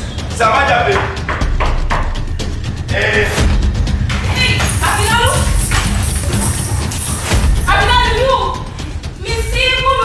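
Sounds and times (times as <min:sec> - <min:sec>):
background music with low bass: 0:00.0 - 0:10.0
woman shouting angrily: 0:04.4 - 0:05.6, 0:07.7 - 0:08.6.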